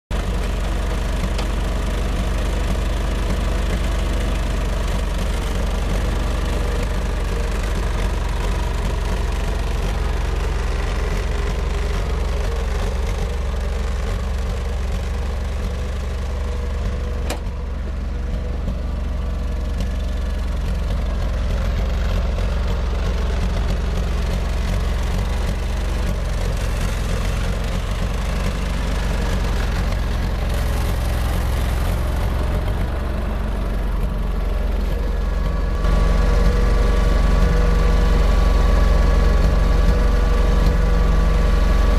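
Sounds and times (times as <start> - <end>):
tractor engine running: 0.1 - 41.9.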